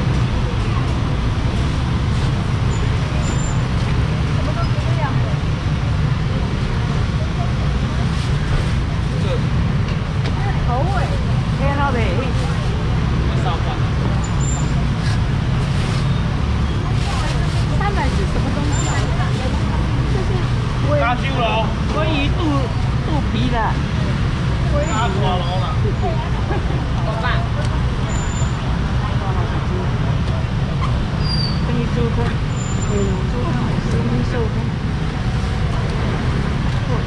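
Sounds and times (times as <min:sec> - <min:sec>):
voices and chatter: 0:00.0 - 0:37.0.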